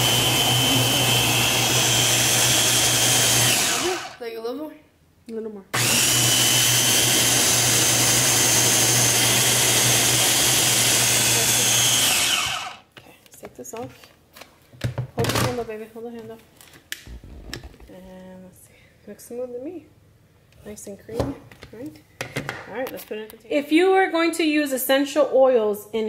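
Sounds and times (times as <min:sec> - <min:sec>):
food processor running: 0:00.0 - 0:04.2, 0:05.8 - 0:12.9.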